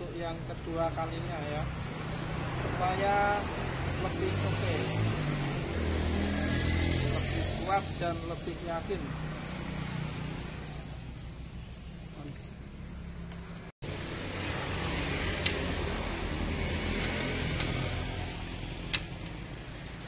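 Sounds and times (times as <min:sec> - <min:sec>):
wrench metallic clicks: 0:18.9 - 0:19.4.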